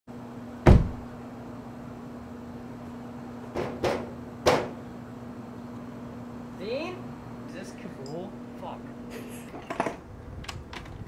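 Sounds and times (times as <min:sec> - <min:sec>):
steady low hum: 0:00.1 - 0:11.0
knocks on a door: 0:00.6 - 0:01.0, 0:03.6 - 0:04.8
car door slamming: 0:00.6 - 0:01.1.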